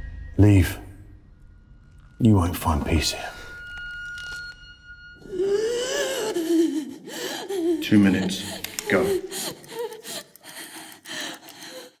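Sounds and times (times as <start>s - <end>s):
person gasping for breath: 5.3s - 12.0s.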